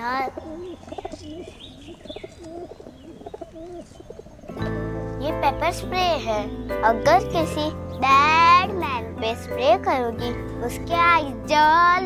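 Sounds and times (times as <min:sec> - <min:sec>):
pigeon cooing: 0:00.0 - 0:05.7
music: 0:04.5 - 0:12.0.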